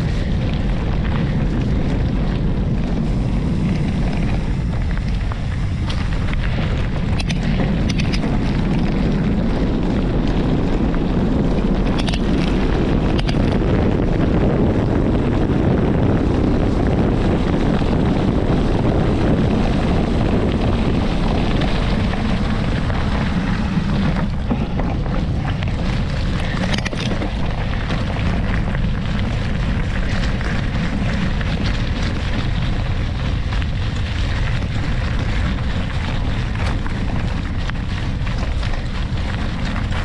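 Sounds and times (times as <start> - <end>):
stones and bike rattling: 0.0 - 40.0
tyres rumbling on gravel: 0.0 - 40.0
wind on microphone: 0.0 - 40.0.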